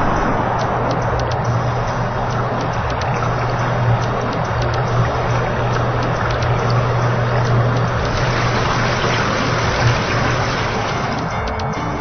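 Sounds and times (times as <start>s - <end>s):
water washing: 0.0s - 11.5s
pump motor hum: 0.0s - 12.0s.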